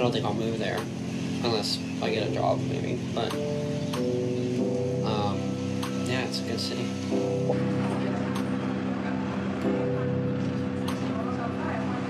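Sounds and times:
low musical tones: 0.0s - 12.0s.

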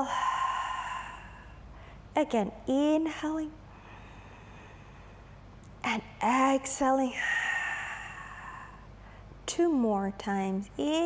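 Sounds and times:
woman exhaling: 0.0s - 1.9s, 7.1s - 8.9s.

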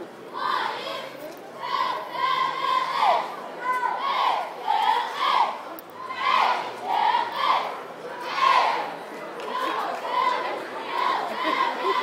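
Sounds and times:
cheerleaders shouting in unison: 1.6s - 8.9s, 9.5s - 12.0s.

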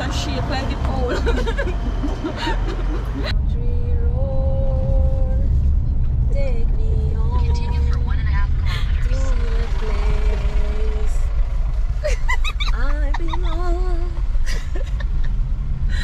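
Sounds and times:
car interior rumble: 0.0s - 16.0s.

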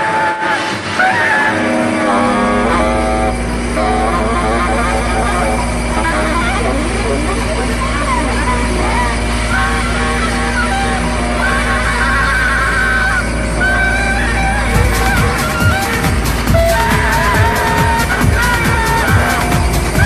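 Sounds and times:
deep bass drone: 0.0s - 20.0s
warbling voice-like synth sounds: 0.6s - 20.0s.

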